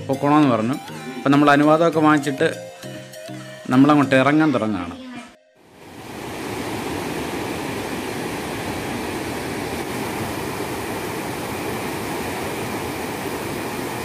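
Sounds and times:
river rushing in rapids: 5.7s - 14.0s.

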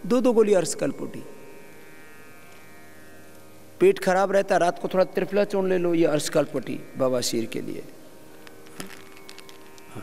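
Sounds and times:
plastic bottle clicks: 8.4s - 9.9s.

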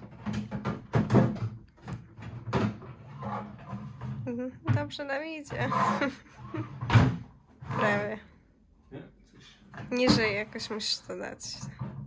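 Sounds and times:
wooden drawer knocking and clacking: 0.0s - 5.6s.

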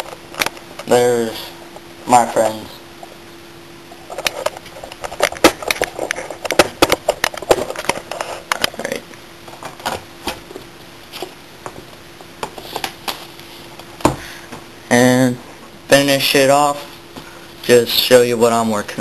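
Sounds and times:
faint steady hum: 0.0s - 19.0s
paper sticker sheets rustling: 12.4s - 13.9s.

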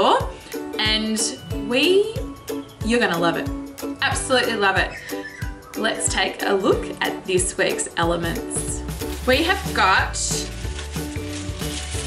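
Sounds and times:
soft background music: 0.0s - 12.0s
leaves and stems rustling: 8.1s - 12.0s.

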